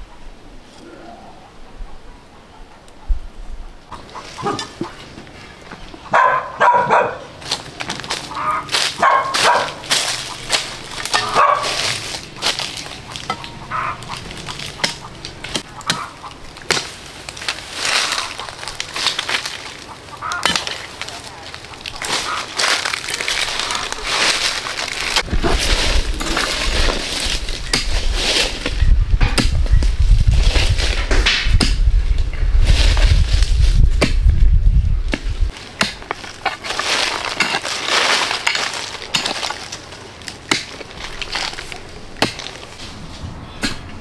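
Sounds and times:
dog barking: 6.1s - 7.3s, 9.0s - 9.8s, 11.2s - 11.8s
crunching in dry leaves: 7.4s - 28.8s, 32.5s - 34.4s, 35.2s - 43.2s
low rumble: 25.0s - 35.5s.

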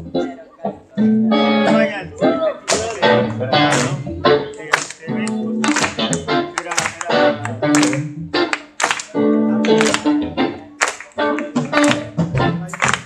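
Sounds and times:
bass guitar: 0.0s - 13.0s
electric guitar chords: 0.0s - 13.0s.

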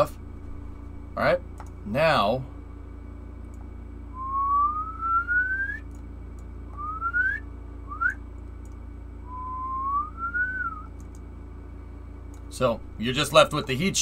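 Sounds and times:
person whistling rising notes: 4.1s - 5.8s, 6.8s - 8.2s, 9.2s - 10.9s.

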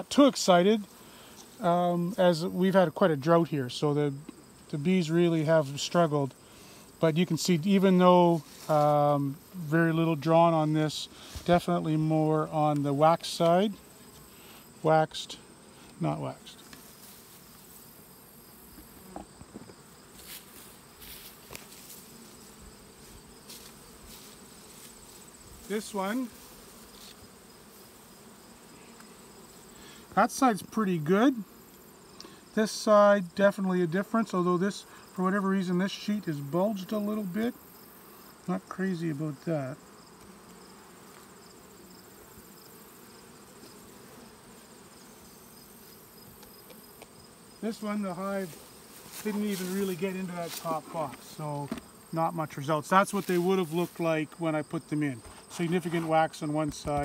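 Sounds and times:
bees humming: 0.0s - 57.0s
high insect trill: 0.1s - 57.0s.

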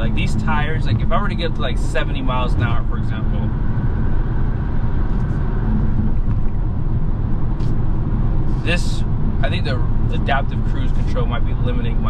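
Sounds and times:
road and tire noise in car: 0.0s - 12.0s.

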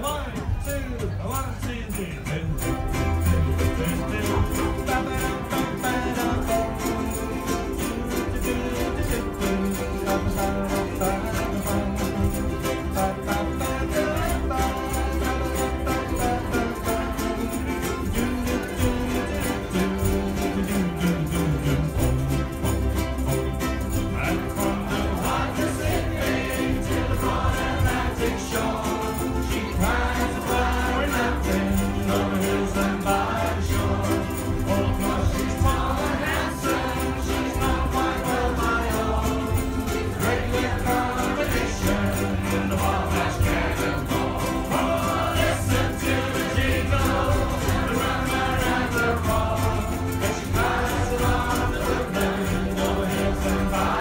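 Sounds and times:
many voices singing: 0.0s - 54.0s
ukulele ensemble strumming: 0.0s - 54.0s.

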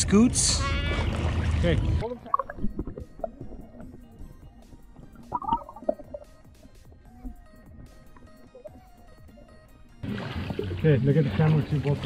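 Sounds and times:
underwater gurgles and bubbles: 1.1s - 12.0s.

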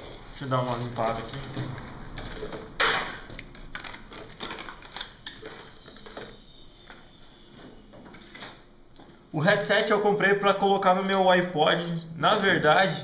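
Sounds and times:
objects clattering: 0.0s - 8.6s
plastic packaging rustling: 0.0s - 8.7s.

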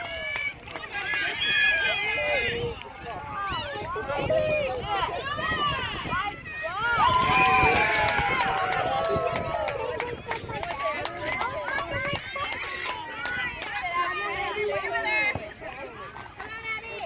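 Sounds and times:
spectators talking and calling out: 0.0s - 17.0s.

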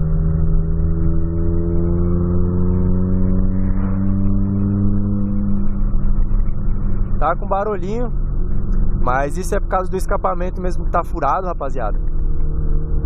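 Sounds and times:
car engine accelerating: 0.0s - 13.0s.

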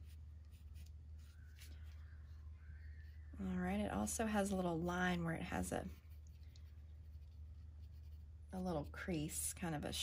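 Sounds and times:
low steady hum: 0.0s - 10.0s
pencil scratching on paper: 5.6s - 9.2s.

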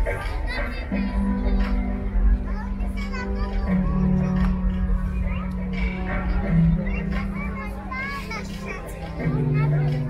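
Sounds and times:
music with held low notes: 0.0s - 10.0s
children calling out: 2.7s - 10.0s.

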